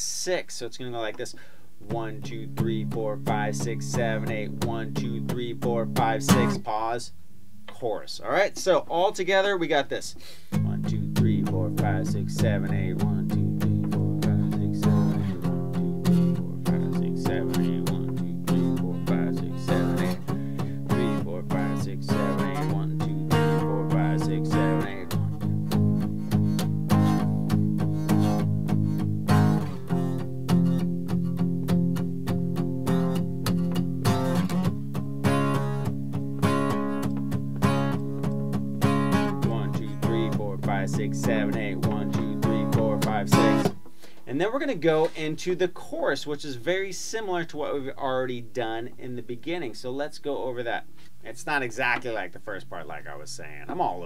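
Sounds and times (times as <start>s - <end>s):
acoustic guitar strummed: 0.9s - 7.1s, 10.1s - 45.6s.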